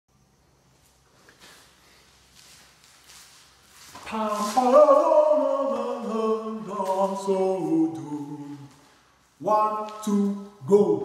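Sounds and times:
faint footsteps: 0.7s - 10.7s
clothing rustle: 0.8s - 9.5s.

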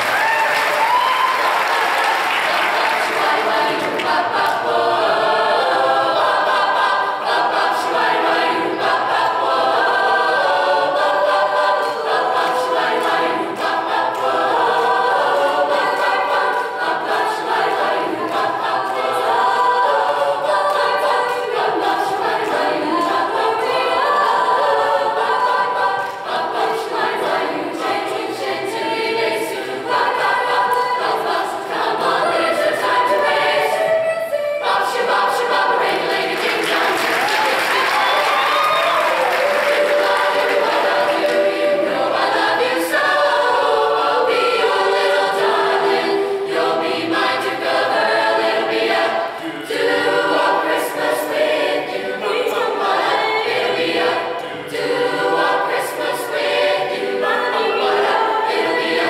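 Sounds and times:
mixed choir singing: 0.0s - 59.0s.

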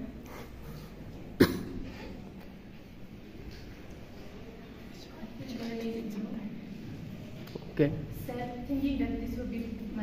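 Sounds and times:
short sharp cough: 1.4s - 2.2s.

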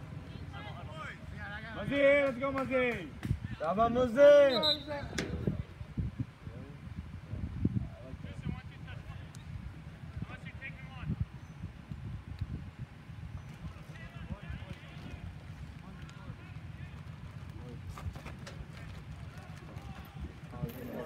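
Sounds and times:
wind buffeting microphone: 4.9s - 21.0s.

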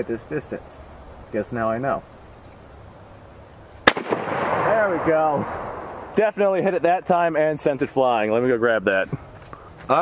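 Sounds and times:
rifle shot crack: 3.8s - 6.3s.

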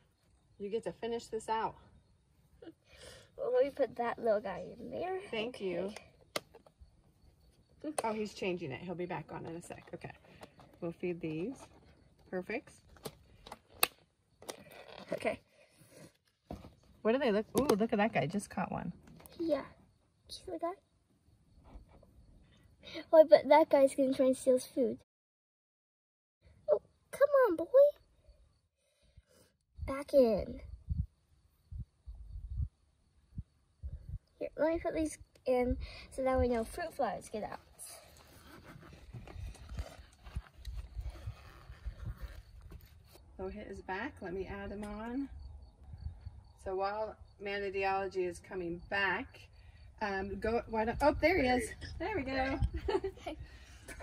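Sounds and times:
sharp plastic clicks: 13.0s - 14.6s.

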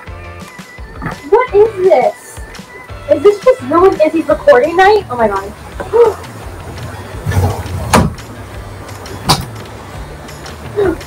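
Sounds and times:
heavy rain pouring: 3.2s - 11.0s.

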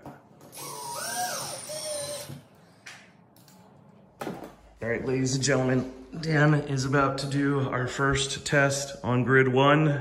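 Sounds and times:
cordless drill motor whine: 0.5s - 2.4s.

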